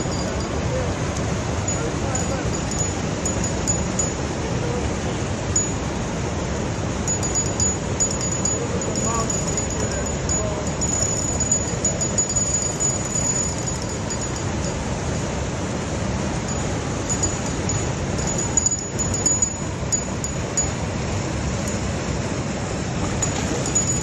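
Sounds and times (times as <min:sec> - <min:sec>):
thin high whine: 0:00.0 - 0:06.2, 0:06.9 - 0:24.0
water rushing from dam: 0:00.0 - 0:24.0.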